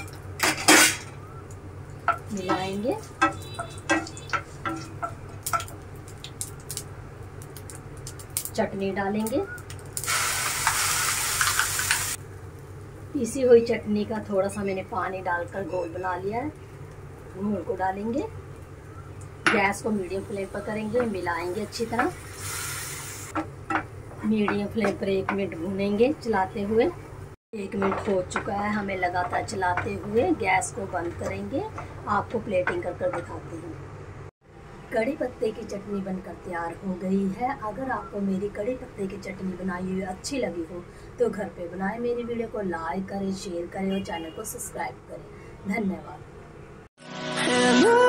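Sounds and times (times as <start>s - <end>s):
chutney sizzling in frying pan: 1.6s - 15.6s, 16.2s - 26.7s
spatula stirring: 2.0s - 5.8s
spatula knocking against pan: 2.1s - 5.7s.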